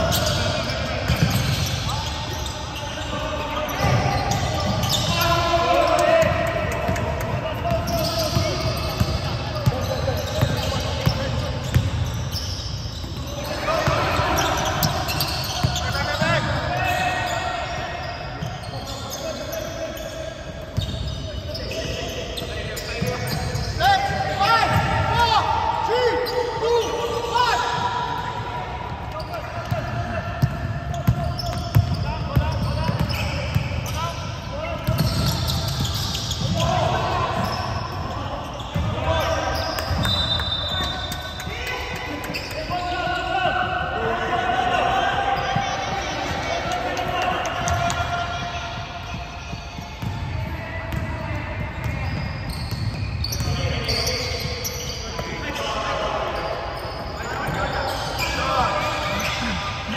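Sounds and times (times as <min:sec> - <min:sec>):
players calling out: 0:00.0 - 0:59.9
sneakers squeaking: 0:00.0 - 0:59.9.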